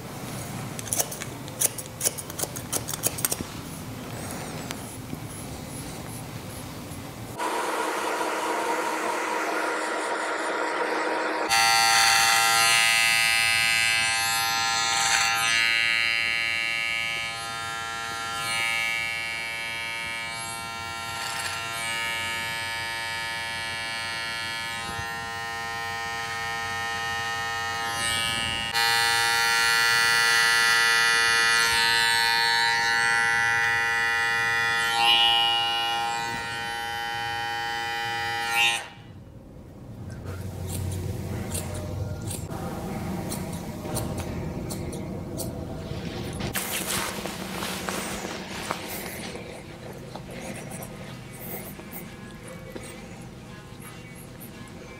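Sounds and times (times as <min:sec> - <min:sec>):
hair clippers humming: 0:07.4 - 0:39.0.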